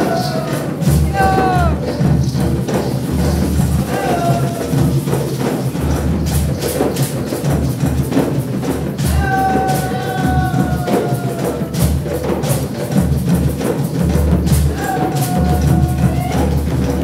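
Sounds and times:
hand drum beating: 0:00.0 - 0:17.0
percussion: 0:00.0 - 0:17.0.

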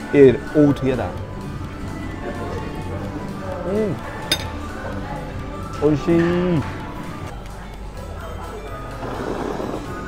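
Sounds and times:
background music: 0:00.0 - 0:10.0
metal cutlery clinking on plate: 0:04.3 - 0:04.6.

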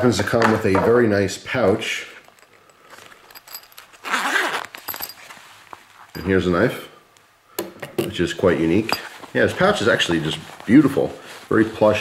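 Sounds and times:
faint metallic clinks: 0:02.1 - 0:05.4, 0:06.0 - 0:06.5
hands handling a zippered pouch: 0:02.9 - 0:06.4.

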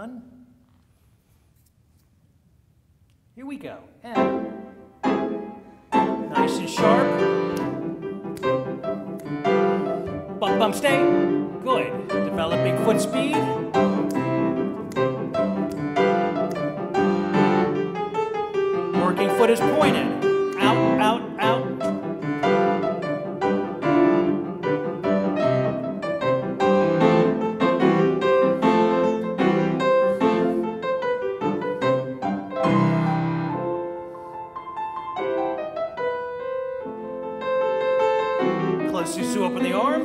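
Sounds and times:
grand piano playing: 0:03.4 - 0:40.0.

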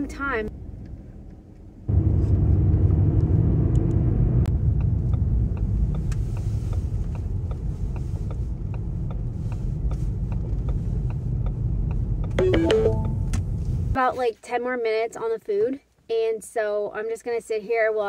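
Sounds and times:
car engine and tyres rumbling: 0:00.0 - 0:14.1.

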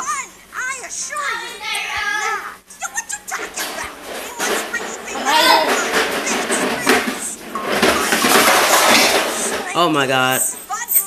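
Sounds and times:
voices shouting: 0:00.0 - 0:11.0
wagon clattering and rattling: 0:02.9 - 0:11.0.

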